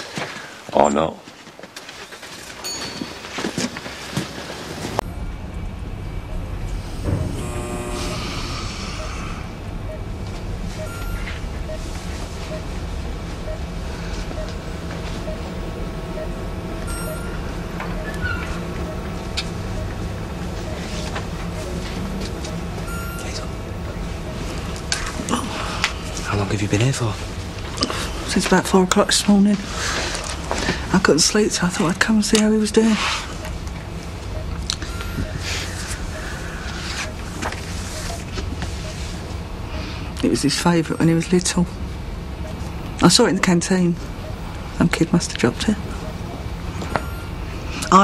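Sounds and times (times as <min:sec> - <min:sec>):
hum and hiss of machines: 0:04.2 - 0:48.0
patient monitor beeps: 0:05.0 - 0:29.1, 0:29.8 - 0:41.7, 0:42.4 - 0:48.0.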